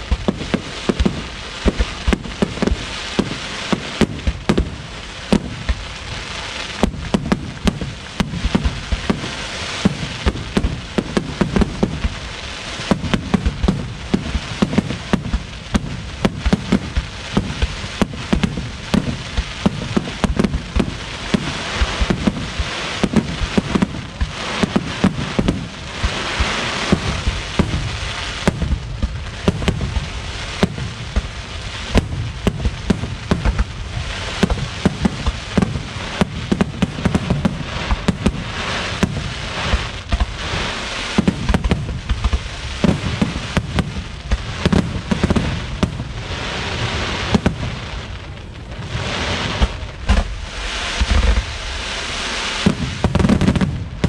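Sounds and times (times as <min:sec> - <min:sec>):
hissing crackle: 0:00.0 - 0:54.0
firework shells bursting: 0:13.0 - 0:46.1, 0:49.6 - 0:51.8.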